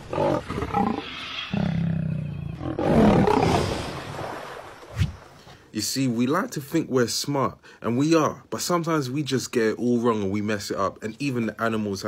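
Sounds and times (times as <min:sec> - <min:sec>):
lion growling and roaring: 0:00.0 - 0:03.8.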